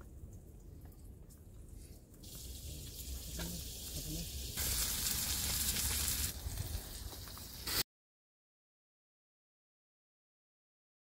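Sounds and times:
vegetables sizzling in hot oil: 2.2s - 7.8s.

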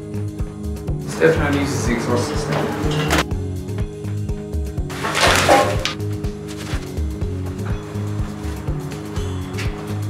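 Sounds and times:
music with bass beat: 0.0s - 5.0s, 5.8s - 10.0s.

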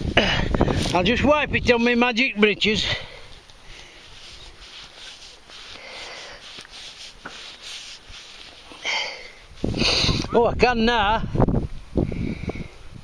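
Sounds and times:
fabric rubbing: 3.7s - 9.9s
short breath: 5.8s - 6.5s.

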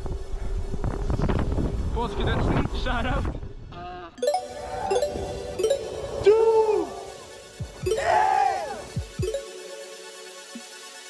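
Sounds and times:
strong wind buffeting microphone: 0.0s - 3.6s.

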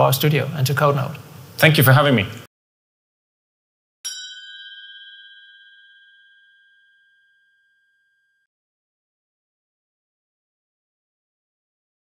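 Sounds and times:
bright bell-like chime: 4.0s - 8.5s.

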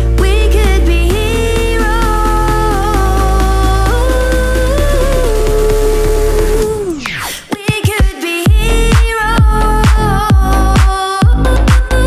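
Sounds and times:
steady bass: 0.0s - 7.2s, 8.5s - 12.0s.

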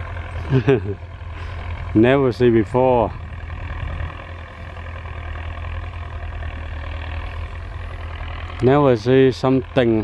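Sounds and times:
distant tractor engine droning: 0.0s - 10.0s.

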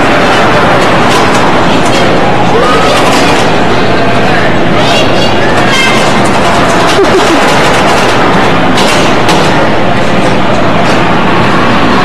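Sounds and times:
bumper cars rattling rumble: 0.0s - 12.0s
bumper cars knocking: 5.5s - 11.0s.

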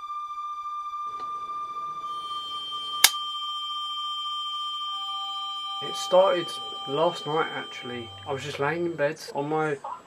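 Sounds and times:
steady high tone: 0.0s - 9.7s.

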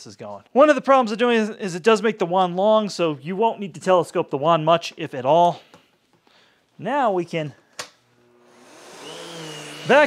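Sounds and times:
vacuum cleaner motor spinning up: 8.2s - 10.0s.

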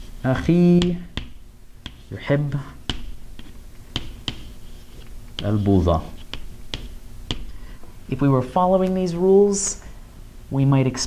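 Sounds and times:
chalk scratching: 0.0s - 7.6s
chalk clicking on chalkboard: 0.4s - 7.5s.

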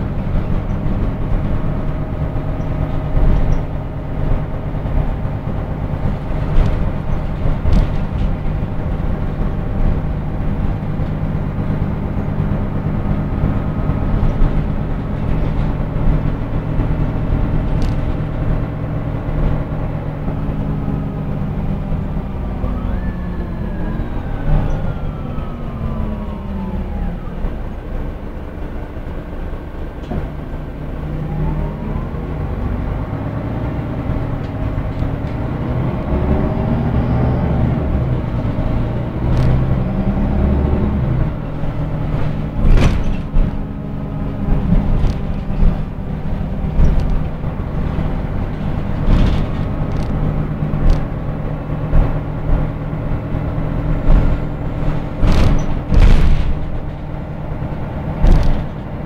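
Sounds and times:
bus diesel engine humming: 0.0s - 59.0s
drivetrain whine: 0.0s - 59.0s
body knocks and rattles: 5.0s - 9.1s, 41.6s - 51.2s, 54.0s - 57.1s, 58.1s - 58.9s.

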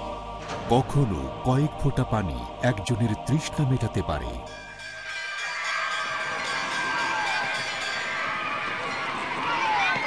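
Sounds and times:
children shouting and cheering: 5.4s - 10.0s.

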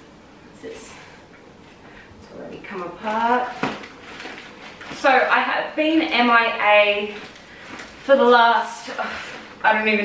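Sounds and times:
woman speaking: 0.5s - 1.2s, 2.2s - 3.7s, 4.9s - 7.3s, 8.0s - 10.0s.

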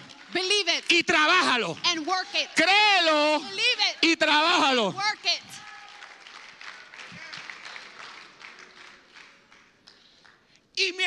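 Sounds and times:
crowd applauding in a hall: 0.0s - 3.6s, 4.2s - 10.6s.

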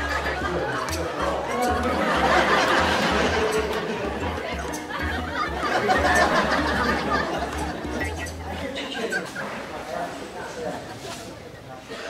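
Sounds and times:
indistinct voices mumbling: 0.0s - 11.0s.

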